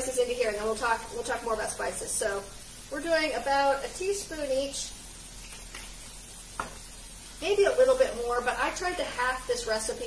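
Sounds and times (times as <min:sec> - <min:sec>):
food sizzling in a frying pan: 0:00.0 - 0:10.0
faint light taps: 0:06.6 - 0:06.8.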